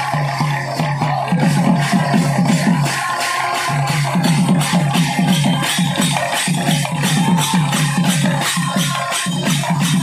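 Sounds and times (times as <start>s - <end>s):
jingling metal percussion: 0.0s - 10.0s.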